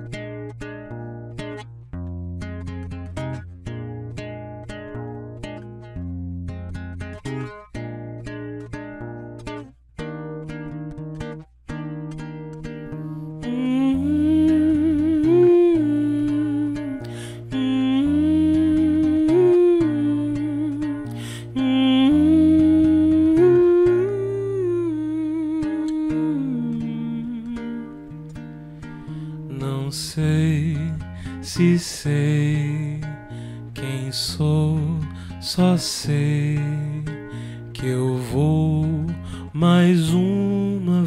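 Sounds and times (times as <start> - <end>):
acoustic guitar picking: 0.0 - 41.0.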